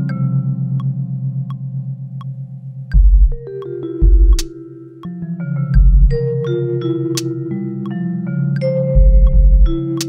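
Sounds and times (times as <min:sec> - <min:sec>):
vibraphone notes ringing: 0:03.3 - 0:10.0.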